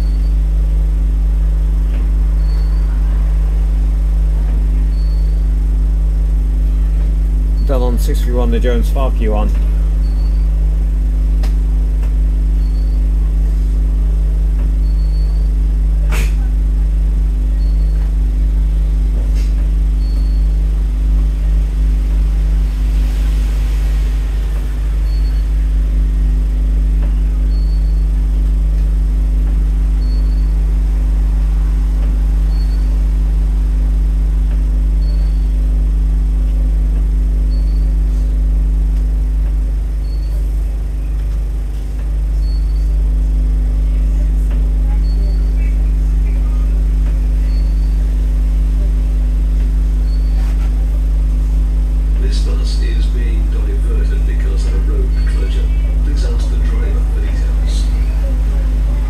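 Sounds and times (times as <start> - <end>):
bus diesel engine idling: 6.6 - 10.0, 39.2 - 59.0.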